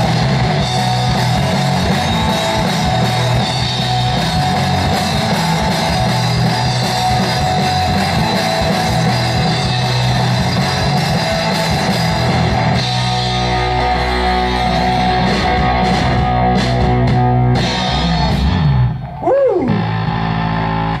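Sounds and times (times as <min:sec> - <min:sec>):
live rock band playing: 0:00.0 - 0:21.0
guitar pitch swoop: 0:12.6 - 0:21.0.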